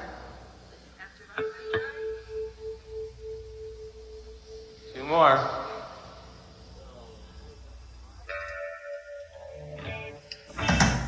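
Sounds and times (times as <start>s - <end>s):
sustained electric guitar note: 1.4s - 6.6s, 7.8s - 10.3s.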